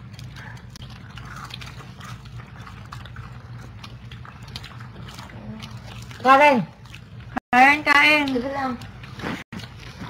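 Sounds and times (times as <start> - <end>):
chewing crunches: 0.0 - 7.4, 8.2 - 10.0
steady low hum: 0.0 - 10.0.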